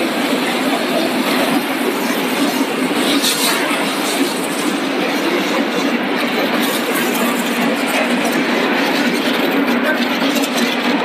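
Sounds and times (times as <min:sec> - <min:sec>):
conveyor machinery rattling: 0:00.0 - 0:11.0.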